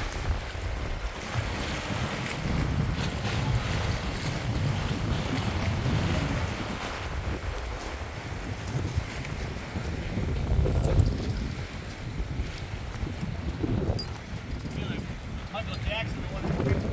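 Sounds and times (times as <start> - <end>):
water washing against pilings: 0.0 - 16.9
wind buffeting microphone: 0.0 - 16.9.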